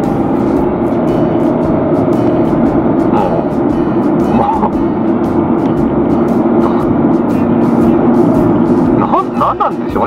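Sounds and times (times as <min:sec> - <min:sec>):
background music: 0:00.0 - 0:10.0
car engine and tyres drone: 0:00.0 - 0:10.0.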